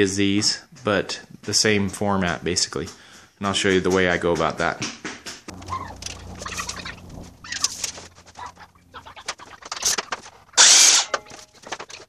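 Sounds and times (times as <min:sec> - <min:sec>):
low hum: 0:05.5 - 0:10.6
boards and tools clicking: 0:07.6 - 0:12.0.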